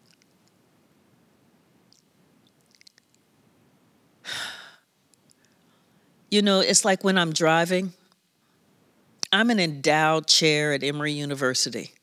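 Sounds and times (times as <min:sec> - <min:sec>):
faint mouth clicks: 0:00.0 - 0:00.6, 0:01.9 - 0:03.2
woman sighing: 0:04.2 - 0:04.9.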